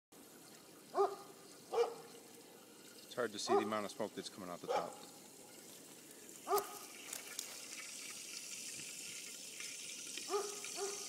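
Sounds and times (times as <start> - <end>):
dog barking: 1.0 - 2.0, 3.5 - 3.8, 4.7 - 5.0, 6.5 - 6.8, 10.3 - 11.0.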